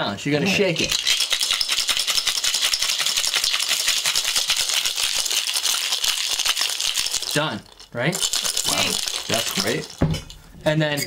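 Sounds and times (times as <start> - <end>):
ice rattling in cocktail shaker: 0.5 - 10.4.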